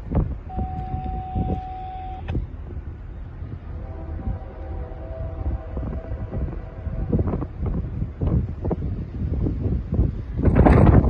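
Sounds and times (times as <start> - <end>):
wind rumbling on microphone: 0.0 - 11.0
distant train horn: 0.5 - 2.6, 3.5 - 8.0.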